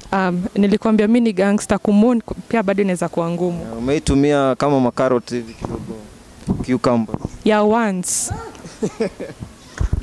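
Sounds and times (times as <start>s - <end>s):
woman making drawn-out vocal sounds: 8.2s - 8.8s.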